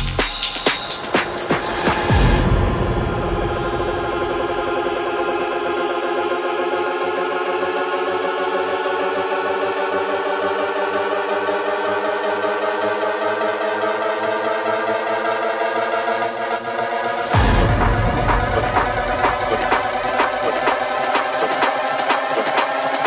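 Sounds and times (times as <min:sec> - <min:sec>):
sustained synthesizer chords: 0:00.6 - 0:23.0.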